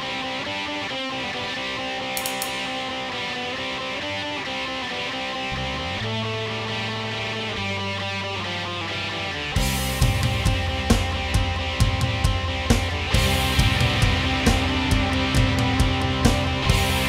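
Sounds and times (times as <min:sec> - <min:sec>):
bass guitar: 0:00.0 - 0:17.0
electric guitar chords: 0:00.0 - 0:17.0.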